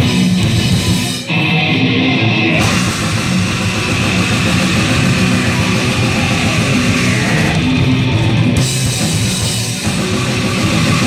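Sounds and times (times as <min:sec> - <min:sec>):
bass guitar: 0:00.0 - 0:11.0
distorted electric guitars: 0:00.0 - 0:11.0
drums: 0:00.0 - 0:11.0.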